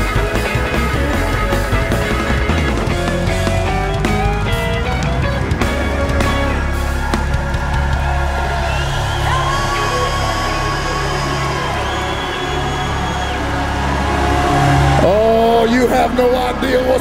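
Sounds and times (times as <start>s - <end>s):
congregation shouting and cheering: 0.0s - 17.0s
worship band playing chords: 0.0s - 17.0s
man's voice: 14.7s - 17.0s.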